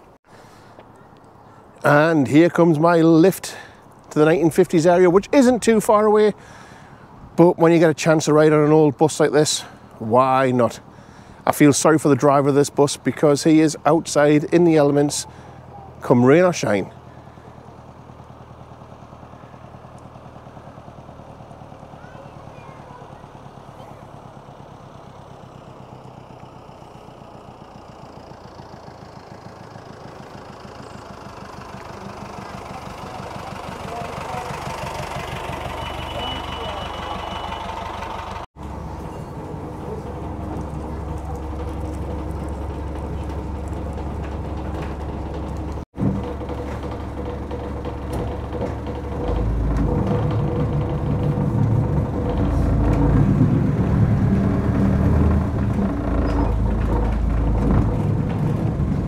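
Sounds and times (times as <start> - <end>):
vintage bus engine running: 0.0 - 59.0.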